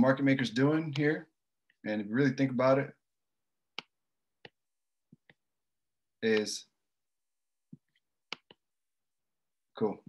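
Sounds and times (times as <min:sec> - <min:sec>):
computer mouse clicks: 0:07.8 - 0:08.6.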